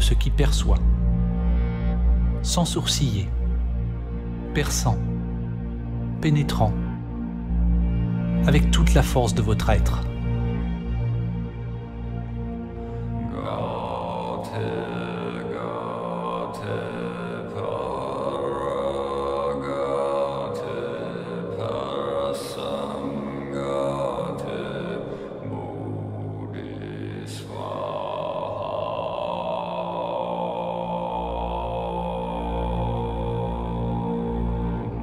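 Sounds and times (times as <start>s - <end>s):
deep bass: 0.0s - 14.0s
chant-like drone music: 0.0s - 35.0s.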